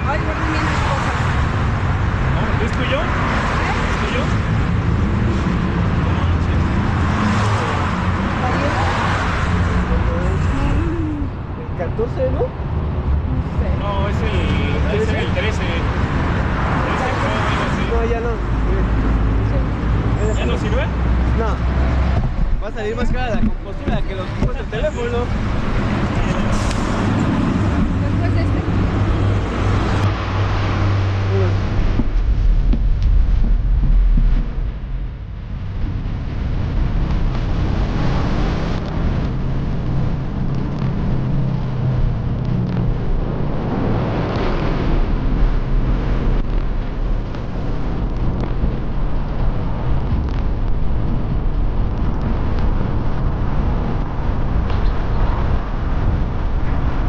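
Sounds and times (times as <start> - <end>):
indistinct voices: 0.0 - 32.4
passing traffic: 0.0 - 57.0
wind rumble on microphone: 0.0 - 57.0.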